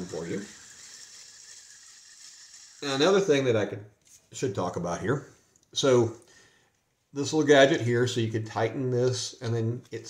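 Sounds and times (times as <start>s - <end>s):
person speaking: 0.0s - 0.6s, 2.8s - 6.2s
fishing reel whirring: 0.0s - 3.4s.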